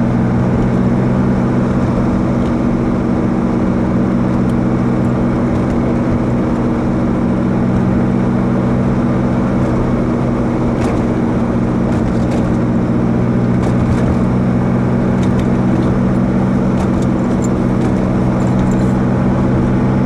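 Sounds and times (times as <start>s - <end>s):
car engine and road noise: 0.0s - 20.0s.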